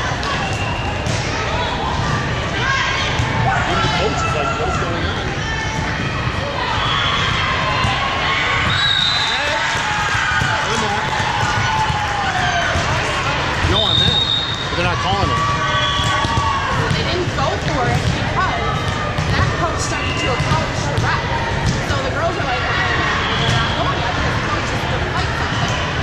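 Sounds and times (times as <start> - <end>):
volleyballs being hit and bouncing: 9.4 - 22.3
sneakers squeaking: 23.0 - 24.0.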